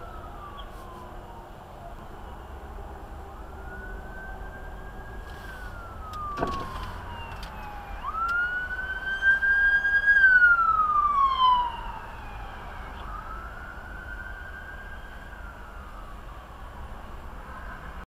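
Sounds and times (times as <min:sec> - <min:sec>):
police siren wailing: 0:00.0 - 0:18.0
road noise inside car: 0:00.0 - 0:18.0.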